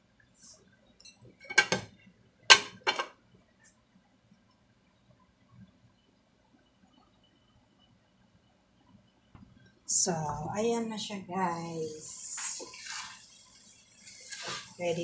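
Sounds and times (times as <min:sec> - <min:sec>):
kitchenware clattering: 0:01.4 - 0:01.9, 0:02.5 - 0:03.2.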